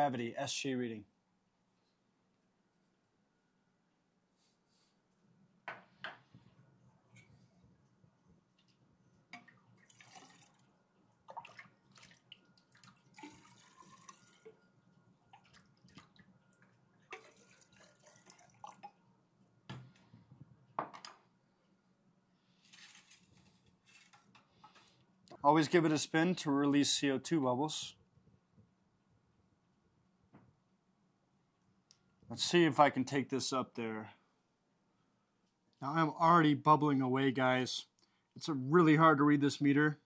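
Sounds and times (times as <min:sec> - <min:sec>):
liquid pouring into glass: 0:09.4 - 0:10.7, 0:11.3 - 0:14.7, 0:17.1 - 0:19.0.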